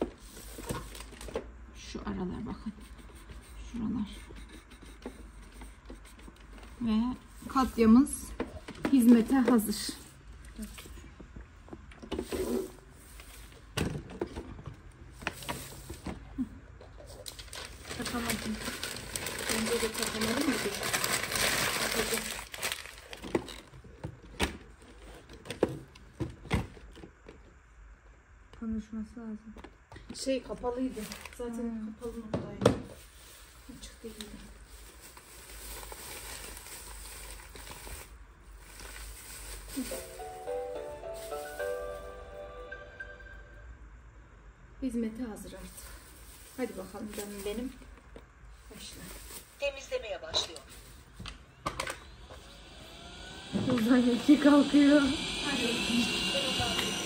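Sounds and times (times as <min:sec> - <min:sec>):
paper crinkling and rustling: 0:00.2 - 0:01.4, 0:17.0 - 0:23.8, 0:30.7 - 0:31.7, 0:33.0 - 0:42.0.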